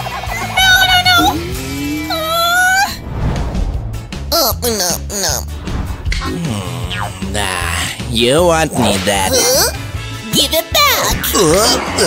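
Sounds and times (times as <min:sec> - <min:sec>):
background music: 0:00.0 - 0:12.0
cartoon character high-pitched wailing: 0:00.6 - 0:03.0.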